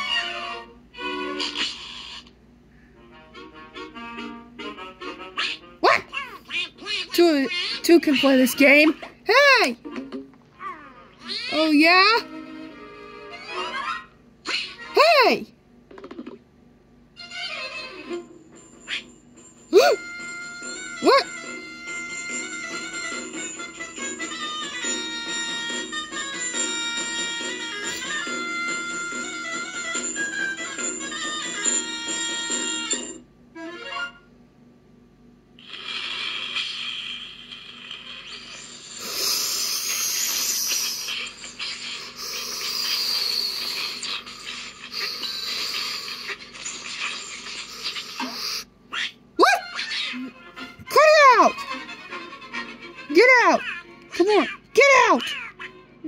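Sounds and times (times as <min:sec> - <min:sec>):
faint music: 0:00.0 - 0:15.9, 0:16.7 - 0:35.6, 0:37.9 - 0:56.0
cartoon hissing rush: 0:38.6 - 0:46.4, 0:47.6 - 0:48.7
background music: 0:49.6 - 0:56.0.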